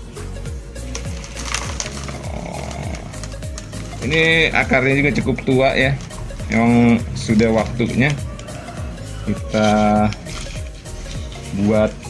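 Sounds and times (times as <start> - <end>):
dry potting mix rustling: 0.6 - 12.0
soil pattering into plastic basin: 0.8 - 8.5.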